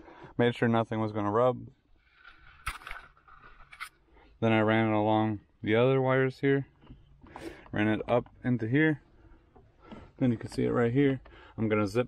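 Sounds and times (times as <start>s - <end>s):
sharp scrapes: 2.0s - 4.0s
light scraping and rustling: 2.0s - 4.2s.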